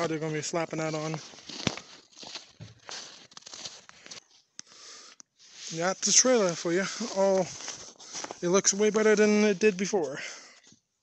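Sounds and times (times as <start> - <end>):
footsteps crunching in snow: 0.0 - 4.5, 5.4 - 10.5.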